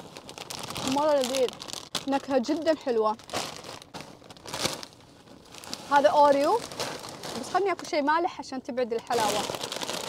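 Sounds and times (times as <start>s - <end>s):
plastic snack bags crinkling: 0.0s - 8.0s, 9.0s - 10.0s.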